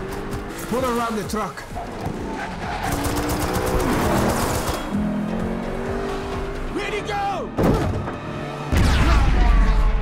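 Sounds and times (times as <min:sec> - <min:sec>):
film score music: 0:00.0 - 0:10.0.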